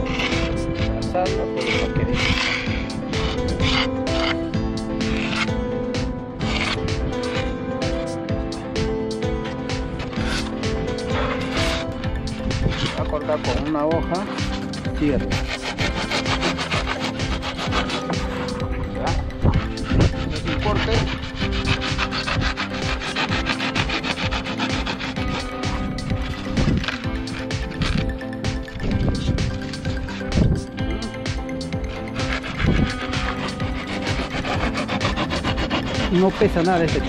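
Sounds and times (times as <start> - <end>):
background music: 0.0 - 37.0
saw rasping through polystyrene: 0.0 - 37.0.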